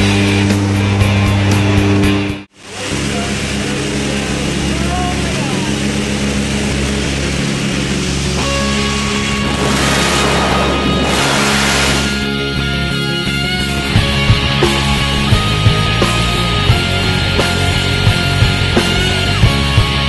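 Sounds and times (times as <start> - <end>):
plane engines droning: 0.0 - 20.0
loud wind rush: 6.0 - 13.0.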